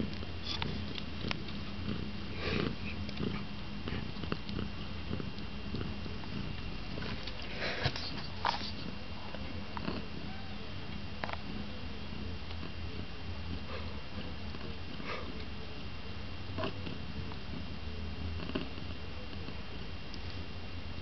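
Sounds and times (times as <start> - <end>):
kitten purring: 0.0 - 15.6, 16.5 - 19.7
kittens scratching on a mat: 2.6 - 8.9.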